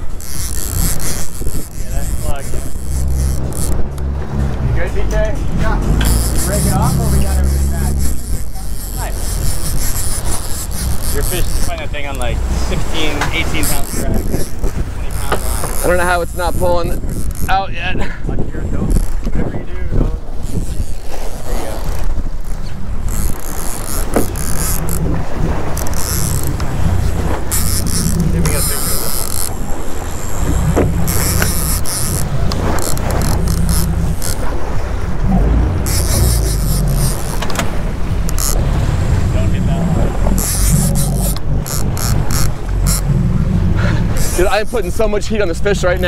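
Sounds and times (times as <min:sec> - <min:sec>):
boat engine running: 0:00.0 - 0:46.0
water churning: 0:00.0 - 0:46.0
wind on microphone: 0:00.0 - 0:46.0.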